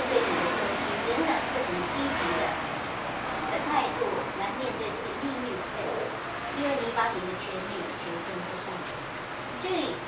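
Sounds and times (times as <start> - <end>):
woman speaking: 0.0 - 2.7, 3.5 - 10.0.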